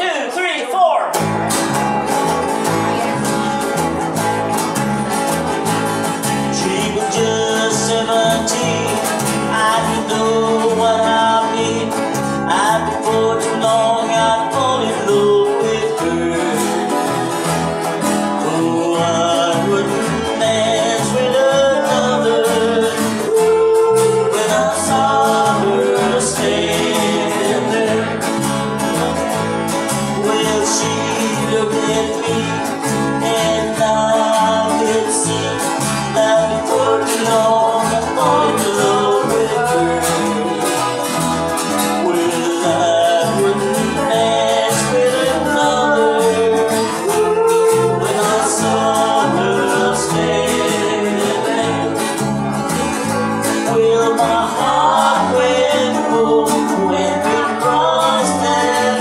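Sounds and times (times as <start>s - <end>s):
live band playing rock and roll: 1.1s - 59.0s
man singing: 5.5s - 59.0s.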